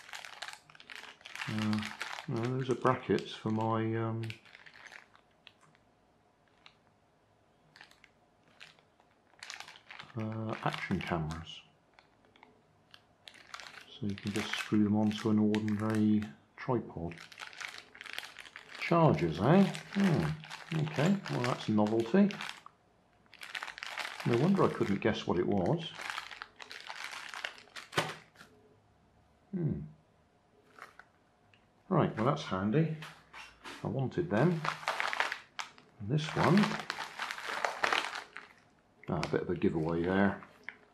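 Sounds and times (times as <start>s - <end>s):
plastic bags crinkling: 0.0s - 5.8s, 6.4s - 6.9s, 7.7s - 16.3s, 17.0s - 28.5s, 30.7s - 31.1s, 33.0s - 40.9s.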